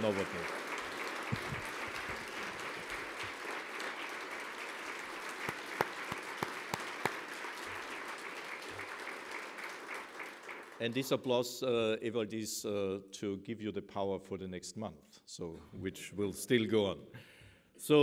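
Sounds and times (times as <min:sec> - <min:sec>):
audience applauding: 0:00.0 - 0:11.1.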